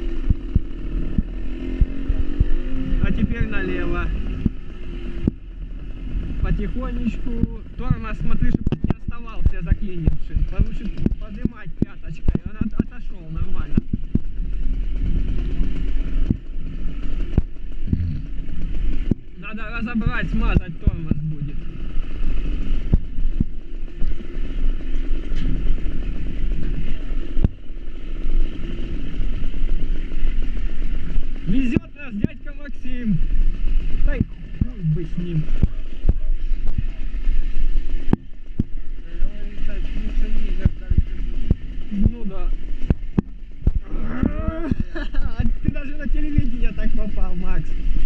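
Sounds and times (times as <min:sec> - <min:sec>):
small motorcycle engine running: 0:00.0 - 0:48.0
wind rumbling on microphone: 0:00.0 - 0:48.0.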